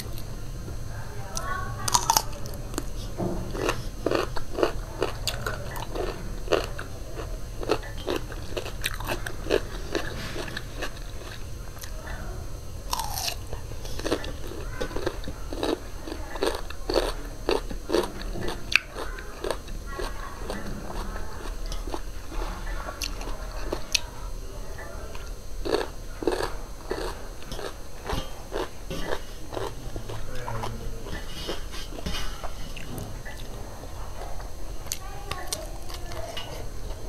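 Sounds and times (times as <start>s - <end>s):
crunching and chewing cucumber: 1.3s - 12.2s, 12.8s - 37.0s.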